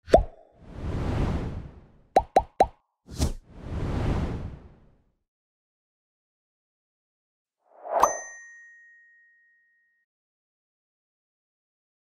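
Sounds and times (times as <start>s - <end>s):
whoosh: 0.6s - 2.0s, 3.1s - 5.0s
bright bell ding: 8.0s - 10.0s.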